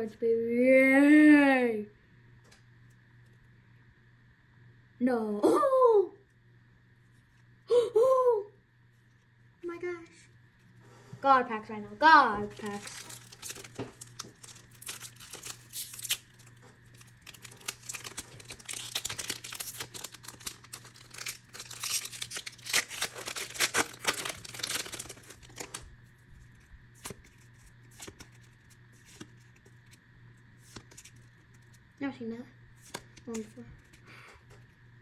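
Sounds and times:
foil wrapper tearing and crinkling: 12.5 - 30.0, 30.6 - 31.8, 32.8 - 34.7.

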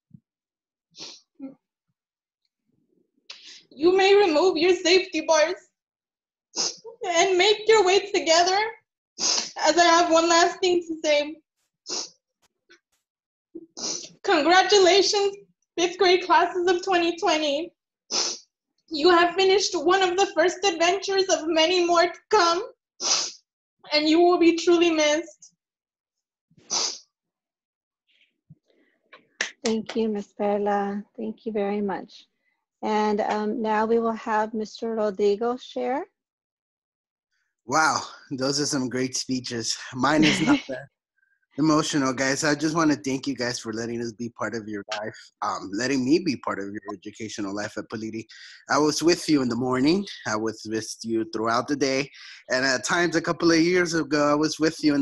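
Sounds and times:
sharp sniff: 1.0 - 1.2, 6.6 - 6.9, 9.2 - 9.6, 11.9 - 12.1, 13.8 - 14.2, 18.1 - 18.4, 23.0 - 23.4, 26.7 - 27.0
throaty catch in voice: 37.7 - 40.8, 41.6 - 54.4
person breathing: 48.3 - 48.7, 52.0 - 52.5.

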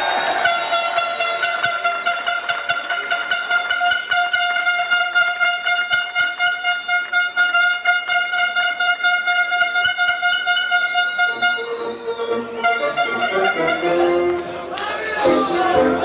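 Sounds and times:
rapid clapping: 0.0 - 4.8
air horn blast: 0.3 - 14.4.

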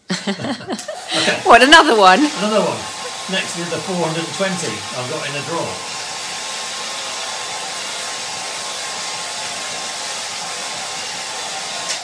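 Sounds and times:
hair dryer running: 0.3 - 12.0.

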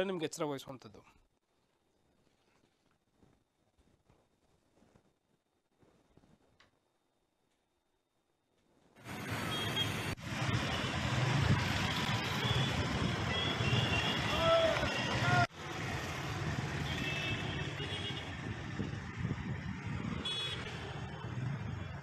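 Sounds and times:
road traffic: 9.0 - 22.0.

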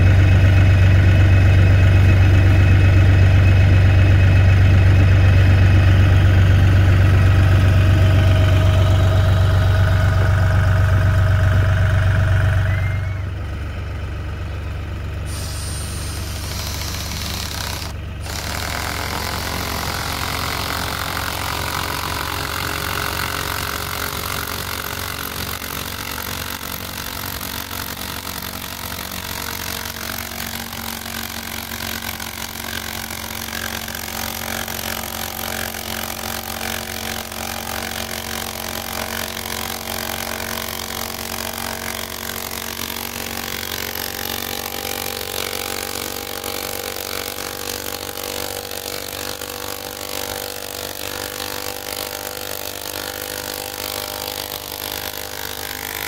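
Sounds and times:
tractor engine idling: 0.0 - 48.8.

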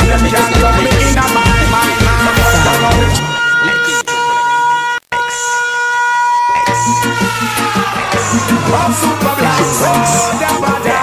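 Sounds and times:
sustained horn-like tone: 0.0 - 11.0.

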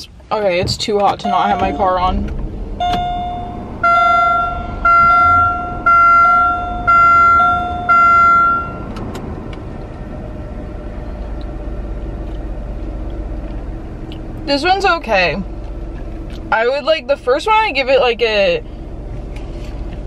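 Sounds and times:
car running hum: 0.0 - 20.0
dashboard warning chime: 1.0 - 9.0.

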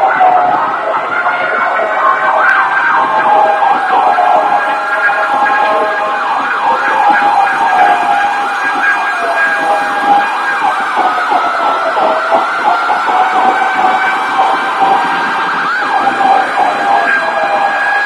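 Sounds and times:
emergency vehicle sirens: 0.0 - 18.0
road traffic hum: 0.0 - 18.0.

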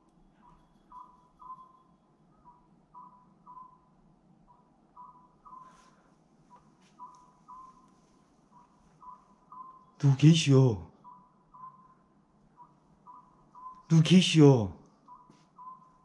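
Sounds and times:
short electronic beeps: 8.6 - 16.0.

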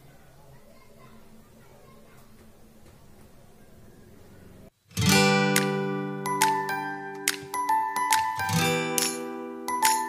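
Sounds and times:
plucked guitar-like music: 4.9 - 10.0.

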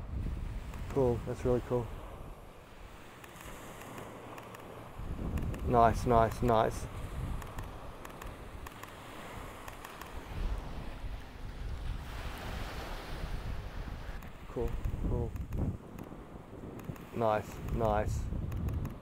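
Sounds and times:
small waves washing on sand: 0.0 - 19.0
wind rumbling on microphone: 0.0 - 19.0.

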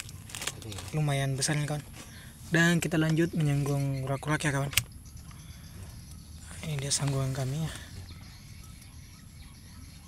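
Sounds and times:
faint distant bird calls: 0.0 - 10.0
steady low rumble: 1.1 - 10.0.

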